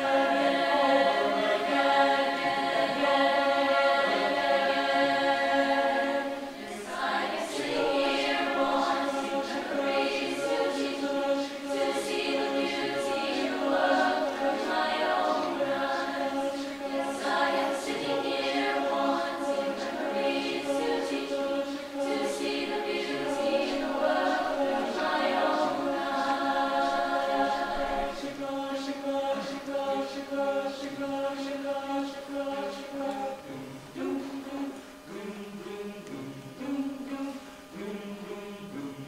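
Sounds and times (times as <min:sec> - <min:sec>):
choir singing a cappella: 0:00.0 - 0:39.0.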